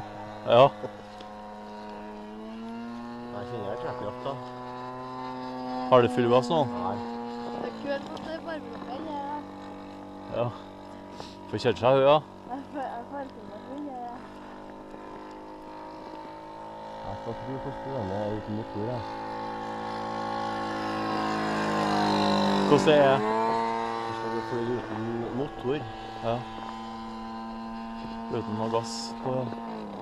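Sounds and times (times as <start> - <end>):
model plane engine running: 0.0 - 30.0.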